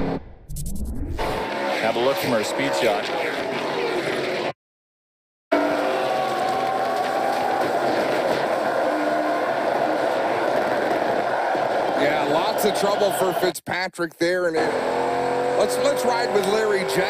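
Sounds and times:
race car engine drone from cockpit: 0.0s - 4.5s, 5.5s - 6.4s, 14.5s - 17.0s
race car engines passing: 1.2s - 4.5s, 14.5s - 17.0s.

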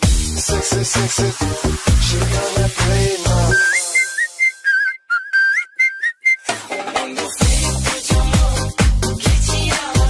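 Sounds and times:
dance-pop music: 0.0s - 4.7s, 6.4s - 10.0s
whistled melody: 3.4s - 7.2s.

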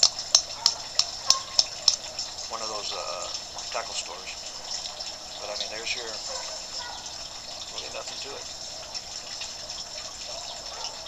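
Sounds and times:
sharp evenly spaced clicks: 0.0s - 10.4s
running water hissing: 0.0s - 11.0s.

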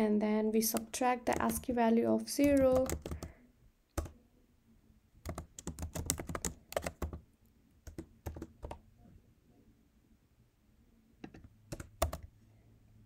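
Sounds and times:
computer keyboard typing: 0.6s - 1.7s, 2.4s - 3.3s, 4.0s - 4.2s, 5.2s - 7.2s, 7.8s - 8.8s, 11.2s - 12.3s.

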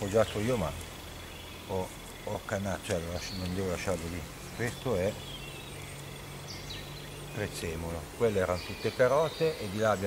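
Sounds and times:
bird chirps: 0.0s - 10.0s.

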